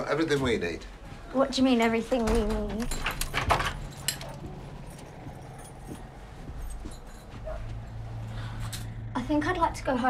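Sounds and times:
faint movements: 0.0 - 9.2
low steady hum: 0.0 - 10.0.

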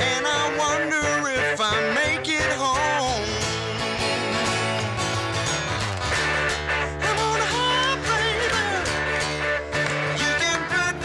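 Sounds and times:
band playing guitars: 0.0 - 11.0
wavering guitar melody: 0.0 - 11.0.

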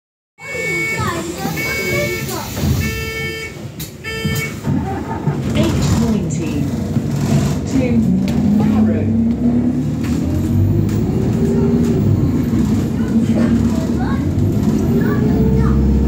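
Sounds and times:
bus engine running: 0.4 - 16.0
voices: 0.4 - 16.0.

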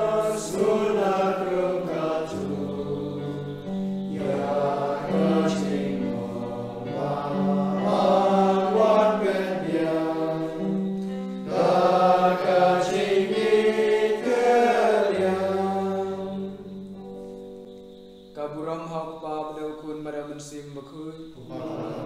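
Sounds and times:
voices singing a hymn: 0.0 - 17.7, 18.4 - 22.0.

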